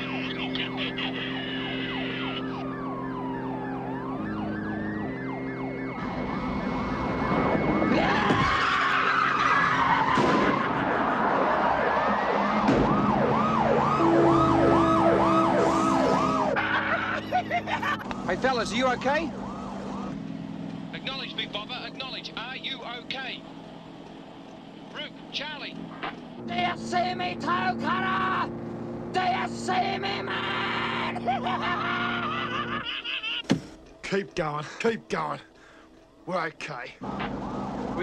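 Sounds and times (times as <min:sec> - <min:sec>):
cars driving at high speed: 0:00.0 - 0:36.3, 0:37.0 - 0:38.0
police sirens wailing: 0:00.0 - 0:38.0
loud tyre screech: 0:07.9 - 0:12.0.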